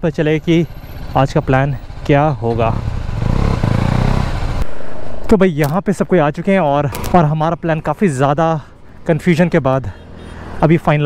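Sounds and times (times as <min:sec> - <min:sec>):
motorcycle engine running: 0:00.6 - 0:04.6.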